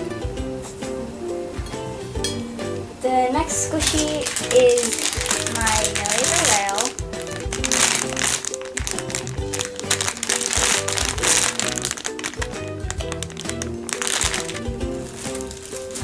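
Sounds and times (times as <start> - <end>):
background music with beat: 0.0 - 16.0
plastic package crinkling: 3.8 - 16.0.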